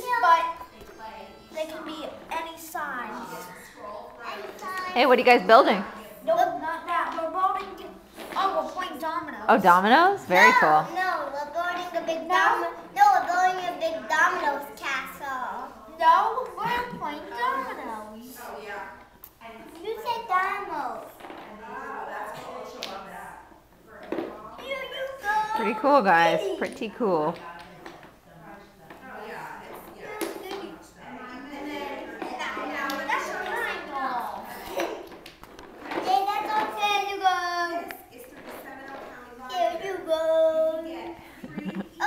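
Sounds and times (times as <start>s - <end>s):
children talking quietly: 0.0s - 42.0s.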